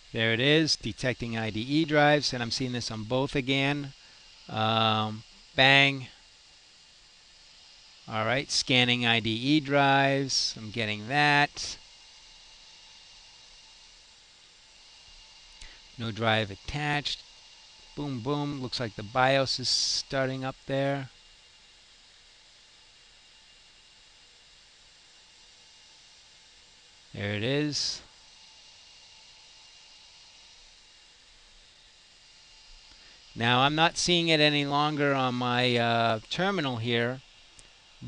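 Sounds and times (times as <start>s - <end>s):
faint steady hiss: 0.0s - 38.0s
thin high-pitched hum: 0.0s - 38.0s.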